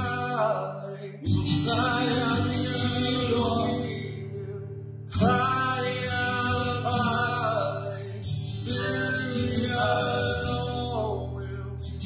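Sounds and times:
men singing: 0.0 - 11.4
strummed acoustic guitar: 0.0 - 12.0.

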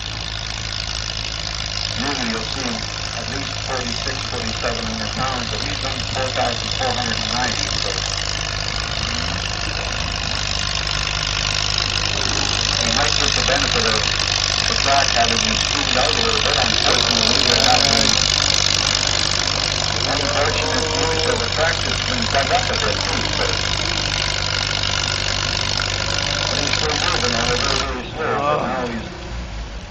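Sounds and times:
tractor engine running under load: 0.0 - 29.9
announcer talking: 1.9 - 25.2, 26.0 - 29.2.

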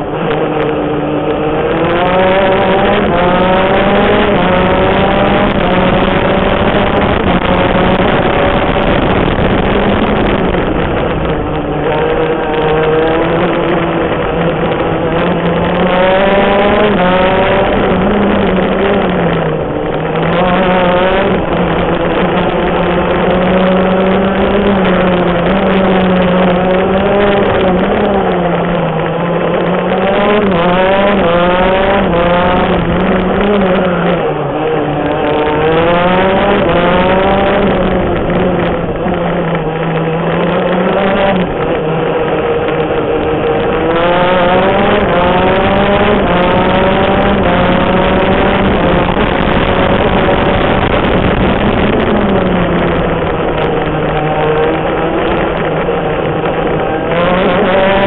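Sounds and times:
kart engine revving through gears: 0.0 - 58.0.

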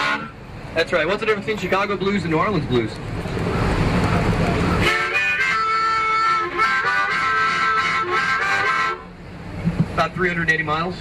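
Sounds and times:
harmonica playing chords: 0.0 - 0.4, 4.8 - 9.2
road noise: 0.0 - 11.0.

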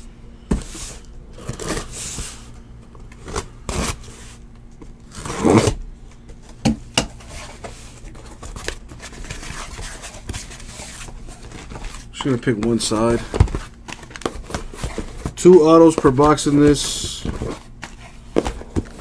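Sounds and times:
cardboard ripping: 1.4 - 2.2, 5.1 - 5.8.

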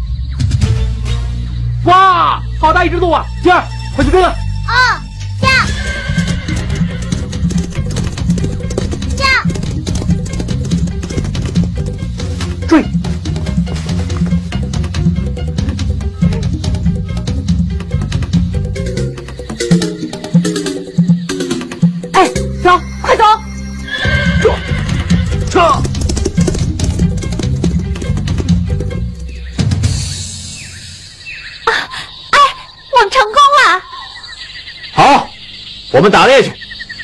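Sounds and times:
horse whinnying: 5.5 - 7.8, 23.8 - 26.8
drumming: 5.8 - 22.8, 24.3 - 30.6
music with steady beat: 6.4 - 22.8, 25.1 - 30.6.

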